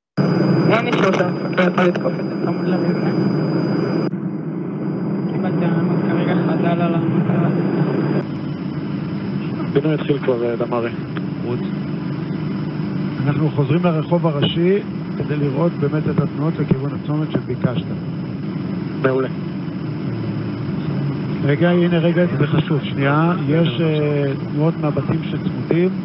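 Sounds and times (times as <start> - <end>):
aircraft engine drone over radio: 0.2 - 26.0
faint high whine: 0.2 - 26.0
steady low hum: 0.2 - 26.0.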